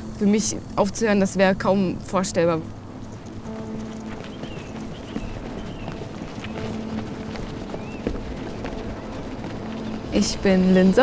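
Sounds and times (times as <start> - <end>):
soft background music: 0.0 - 11.0
running footsteps on paving: 2.7 - 11.0.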